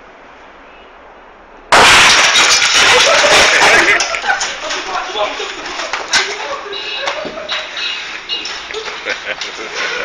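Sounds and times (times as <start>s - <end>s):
very loud bang: 1.7s - 3.9s.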